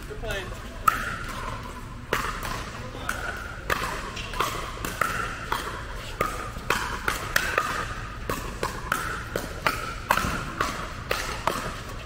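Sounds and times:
paddles hitting plastic ball: 0.8s - 12.0s.

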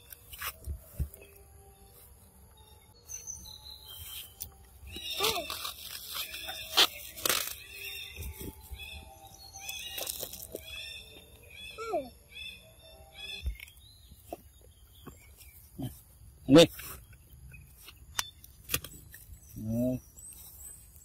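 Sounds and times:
short high chirping calls: 3.0s - 14.4s.

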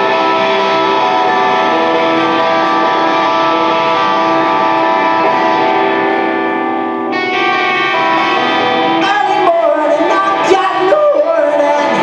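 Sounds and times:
electric guitar chords: 0.0s - 12.0s.

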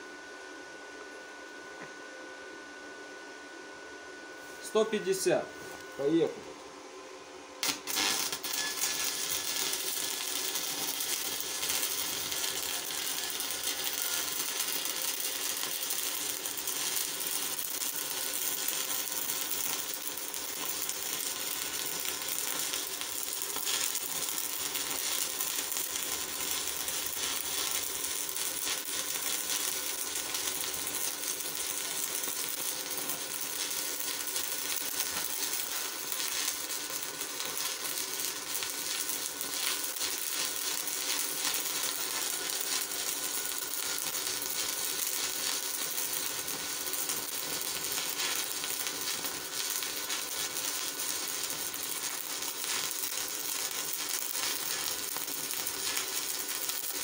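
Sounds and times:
welding arc crackling: 7.6s - 57.0s.

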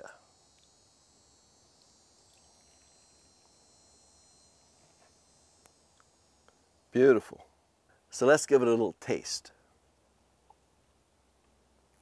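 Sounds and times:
high-pitched insect buzz: 0.0s - 7.4s.

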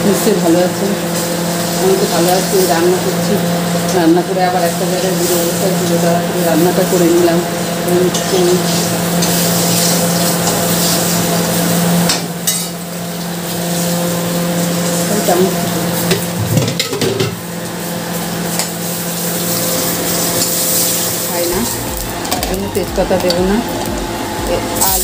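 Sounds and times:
paste sizzling in oil: 0.1s - 16.4s, 17.4s - 23.1s
steady low hum: 18.6s - 25.0s.

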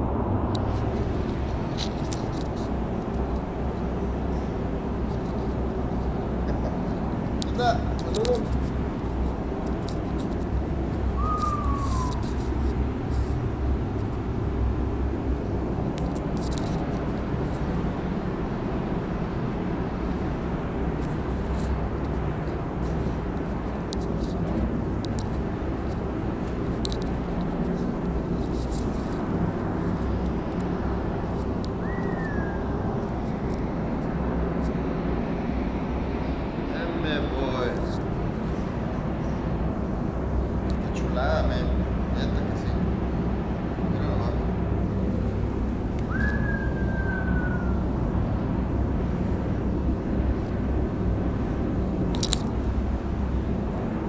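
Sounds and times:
ventilation fans rumbling: 0.0s - 54.0s
light clicks: 22.8s - 26.0s.

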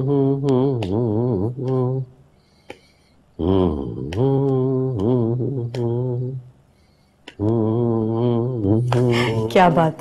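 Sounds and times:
low voice singing long note: 3.4s - 6.5s, 7.4s - 9.5s.

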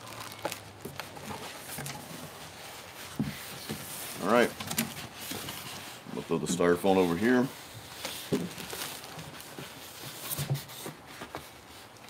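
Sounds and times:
plastic rustling: 0.0s - 12.0s.

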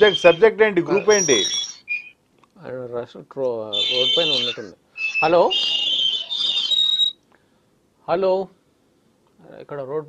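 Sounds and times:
telephone line whistle with hiss: 0.0s - 2.2s, 3.8s - 7.2s.

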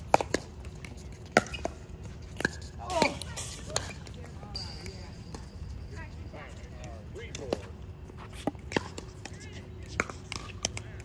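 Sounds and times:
faint voices of players: 8.8s - 11.0s.

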